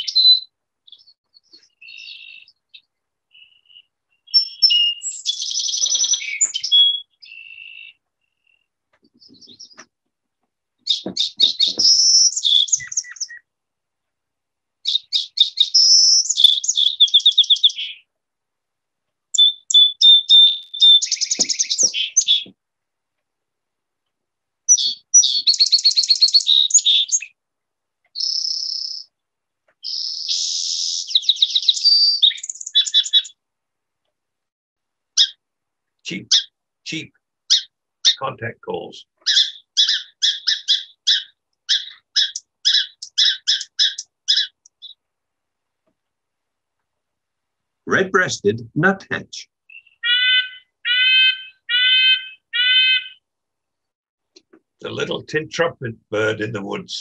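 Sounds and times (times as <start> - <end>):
song sparrow singing: 0.0 - 9.9, 10.8 - 13.5, 14.8 - 18.1, 19.3 - 22.6, 24.7 - 27.4, 28.0 - 33.4, 35.2 - 35.4, 36.2 - 38.3, 39.0 - 45.0, 49.6 - 53.2.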